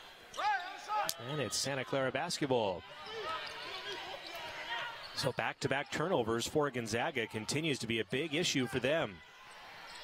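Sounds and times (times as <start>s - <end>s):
crowd murmur in a gym: 0.0s - 10.0s.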